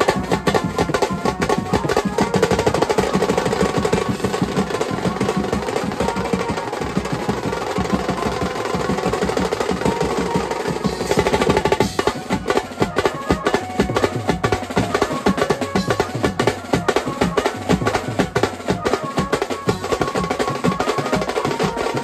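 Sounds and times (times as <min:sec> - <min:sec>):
band playing fast drum beat: 0:00.0 - 0:22.0
cymbals: 0:00.0 - 0:22.0
snare drum rolls: 0:00.0 - 0:22.0.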